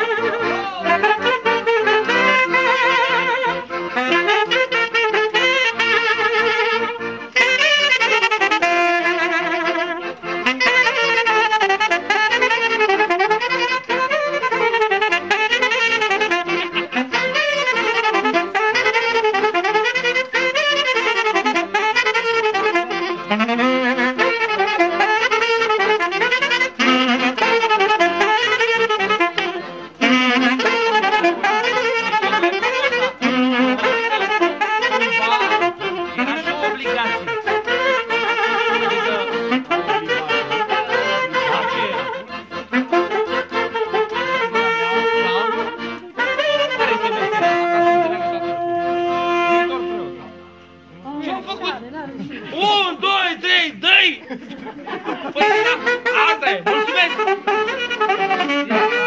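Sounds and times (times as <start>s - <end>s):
folk dance music on wind instrument: 0.0s - 54.2s, 55.0s - 59.0s.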